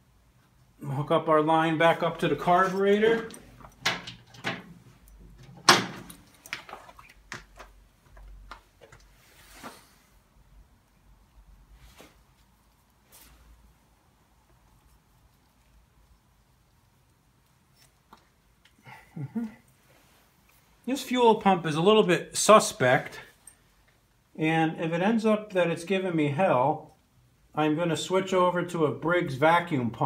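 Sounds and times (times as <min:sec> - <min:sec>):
clicks and knocks of tools: 0:03.1 - 0:09.1
rustle: 0:11.6 - 0:18.5.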